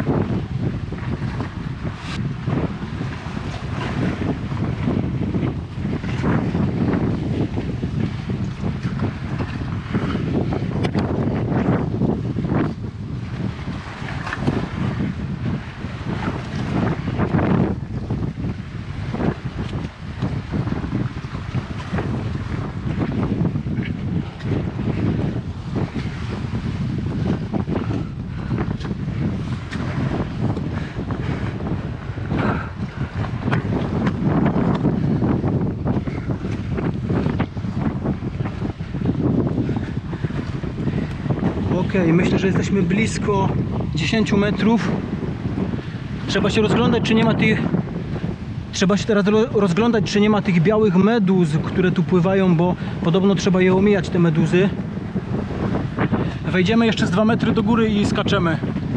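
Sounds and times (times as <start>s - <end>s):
sea surf washing: 0.0s - 58.9s
wind buffeting microphone: 0.0s - 58.9s.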